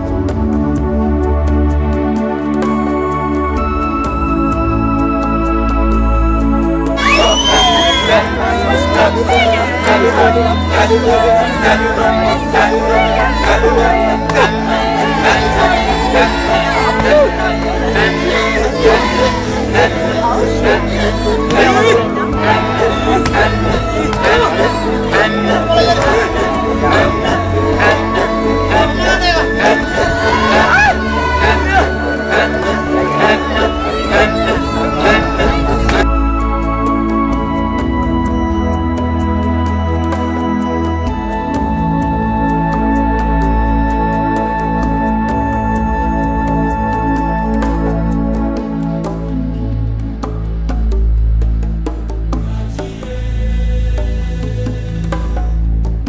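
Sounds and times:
soft instrumental music: 0.0s - 52.5s
group of men chanting: 7.0s - 36.1s, 52.4s - 55.6s
high rising call: 7.0s - 36.3s.

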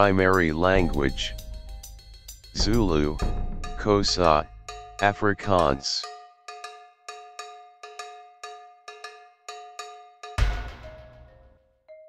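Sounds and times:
bell-like metallic notes: 0.3s - 8.2s.

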